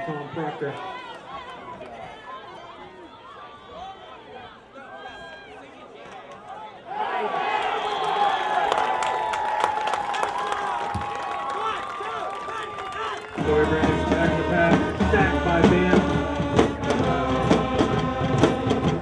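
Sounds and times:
crowd chatter: 0.0s - 9.0s, 10.2s - 19.0s
crowd cheering and clapping: 7.0s - 19.0s.

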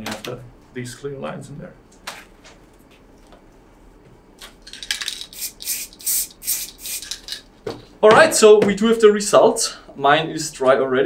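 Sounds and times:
spray can hissing bursts: 5.2s - 7.3s.

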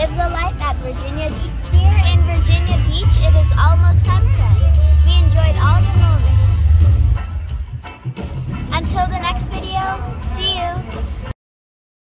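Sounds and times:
girl's sing-song voice: 0.0s - 6.7s, 8.7s - 11.3s
steady low rumble: 0.8s - 11.3s.

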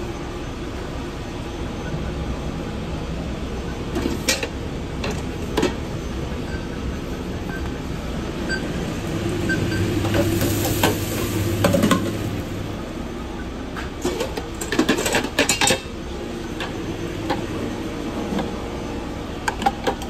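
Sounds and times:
kitchen equipment hum: 0.0s - 20.0s.

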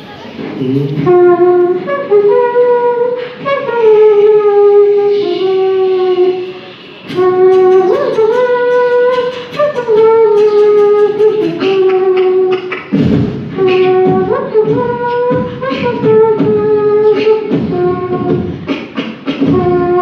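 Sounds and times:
beatbox clicks: 0.6s - 20.0s
hummed horn-like melody: 0.7s - 20.0s.

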